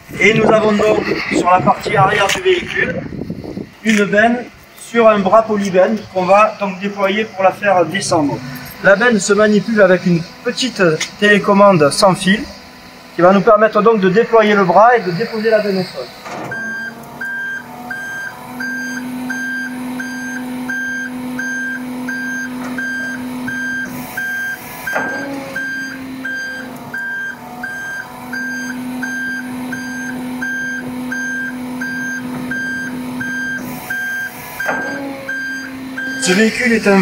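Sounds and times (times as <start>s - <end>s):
warning beeper: 0.0s - 3.7s, 4.9s - 12.4s, 13.2s - 26.6s, 27.7s - 37.0s
hydraulic pump hum: 0.0s - 37.0s.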